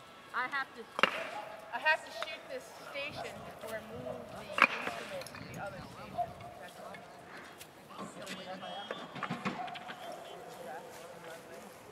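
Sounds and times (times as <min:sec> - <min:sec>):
men talking indistinctly: 0:02.8 - 0:11.9.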